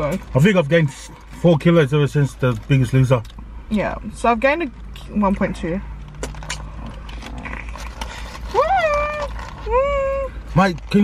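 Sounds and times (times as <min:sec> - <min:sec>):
food being chewed: 0:06.1 - 0:09.7
paper wrappers rustling: 0:07.0 - 0:11.0.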